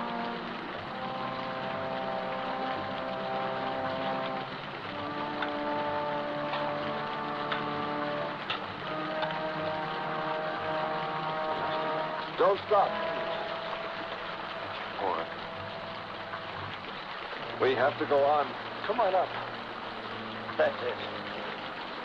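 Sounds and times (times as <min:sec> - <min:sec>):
heavy rain hissing: 0:00.0 - 0:22.0
sustained orchestral chords: 0:00.0 - 0:22.0.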